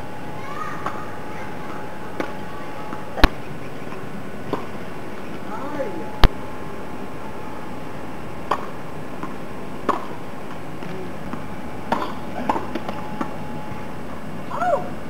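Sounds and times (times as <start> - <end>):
tennis balls struck with rackets: 0.8 - 4.8, 8.4 - 13.4
tennis balls bouncing on hard court: 8.4 - 13.4.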